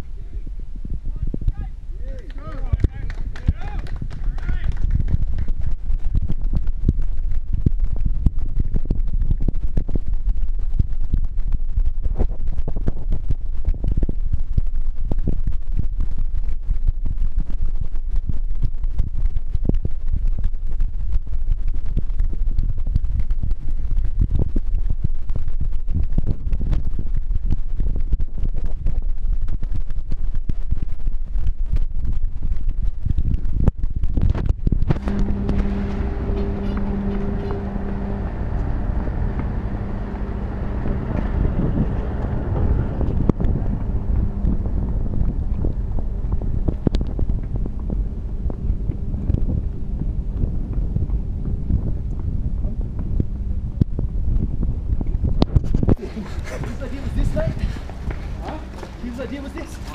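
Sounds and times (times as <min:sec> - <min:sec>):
steady engine hum: 0:00.0 - 0:30.0, 0:34.5 - 0:59.9
wind buffeting microphone: 0:00.0 - 0:59.9.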